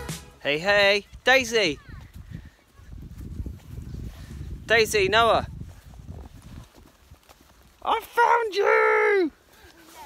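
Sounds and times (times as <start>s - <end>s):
footsteps on wet ground: 0.0s - 10.0s
wind rumble on microphone: 1.0s - 7.9s.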